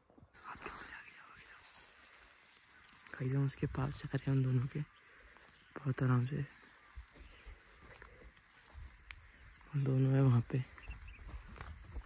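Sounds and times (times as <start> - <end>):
footsteps on dry grass: 0.1 - 12.0.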